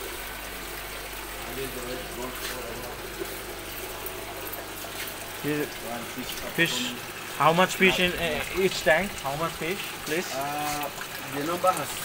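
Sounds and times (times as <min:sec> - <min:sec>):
water splashing into a tank: 0:00.0 - 0:12.0.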